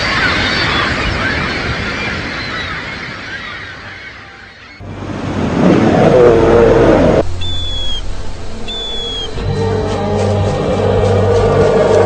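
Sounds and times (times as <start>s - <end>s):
large animal roaring: 5.5s - 7.3s
low steady hum: 6.3s - 10.6s
high thin bird cries: 7.4s - 8.1s, 8.7s - 9.4s.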